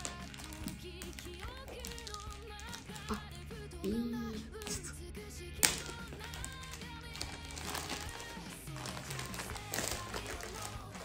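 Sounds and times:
plastic crinkling: 0:00.0 - 0:03.5, 0:05.6 - 0:11.0
plastic film snapping: 0:00.0 - 0:03.5, 0:05.4 - 0:11.0
plastic wrapping tearing: 0:00.0 - 0:03.6, 0:05.5 - 0:11.0
background music: 0:00.0 - 0:11.0.

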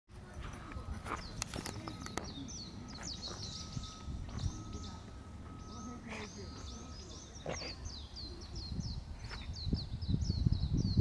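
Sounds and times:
low background noise: 0:00.1 - 0:10.1
small birds chirping: 0:00.2 - 0:11.0.

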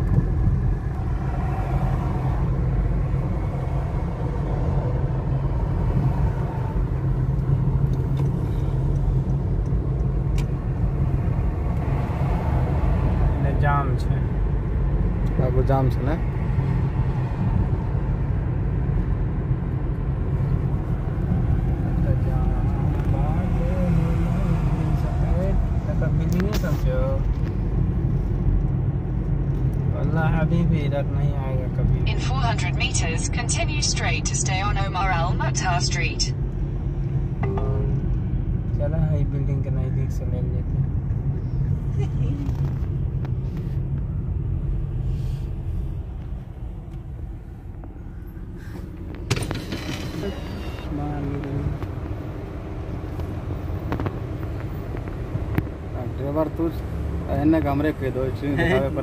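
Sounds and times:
car interior road noise: 0:00.0 - 0:59.0
person talking: 0:32.1 - 0:36.3.

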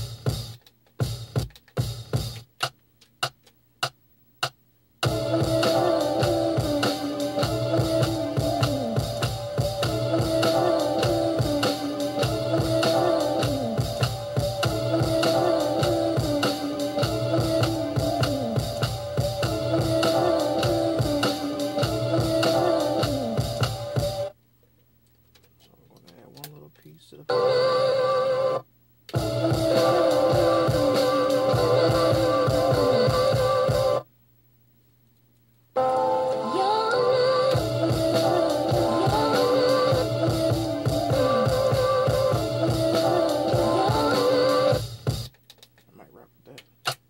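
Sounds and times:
sampled soul music: 0:00.0 - 0:24.4, 0:25.7 - 0:34.1, 0:35.7 - 0:46.3.

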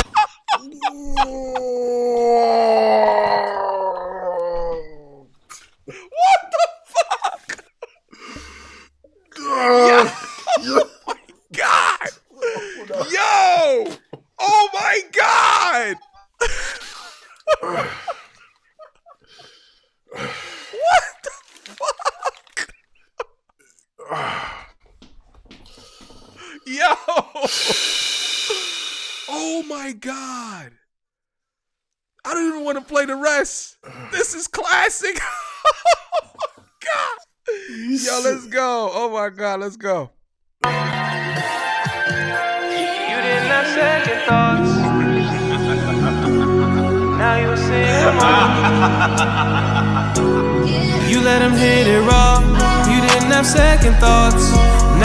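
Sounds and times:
men laughing hard: 0:00.0 - 0:01.8, 0:05.9 - 0:08.0, 0:09.5 - 0:13.6, 0:15.8 - 0:19.2, 0:20.8 - 0:22.6, 0:26.4 - 0:27.8, 0:35.2 - 0:38.3, 0:44.5 - 0:51.3
man exclaiming: 0:00.6 - 0:03.3, 0:09.5 - 0:10.9, 0:11.5 - 0:16.1, 0:26.6 - 0:27.3, 0:29.3 - 0:30.8, 0:36.8 - 0:39.9.

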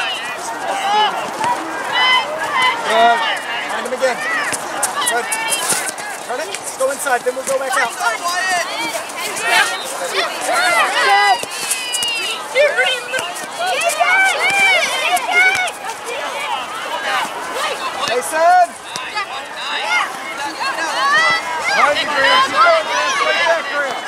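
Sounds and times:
babble of shouting voices: 0:00.0 - 0:24.0.

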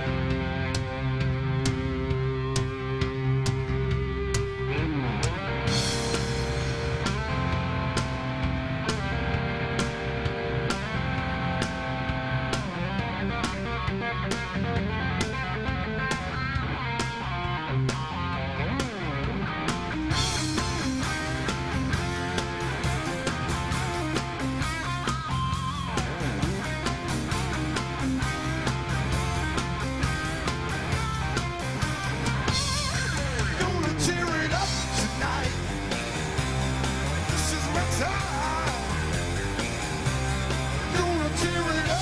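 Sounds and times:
bass guitar: 0:00.0 - 0:42.0
electric guitar lead: 0:00.0 - 0:42.0
steady drum beat: 0:00.0 - 0:42.0.

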